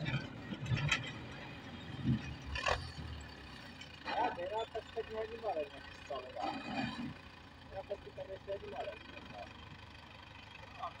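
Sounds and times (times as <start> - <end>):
tractor diesel engine rumble: 0.0 - 11.0.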